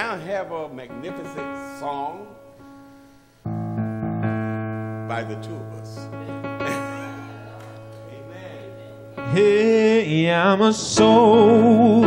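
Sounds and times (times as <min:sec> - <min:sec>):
church keyboard held chord: 0:00.0 - 0:12.0.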